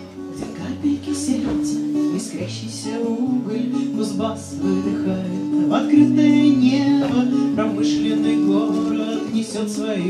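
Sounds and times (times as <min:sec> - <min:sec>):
acoustic guitar strumming: 0:00.0 - 0:10.0
woman singing: 0:00.4 - 0:10.0.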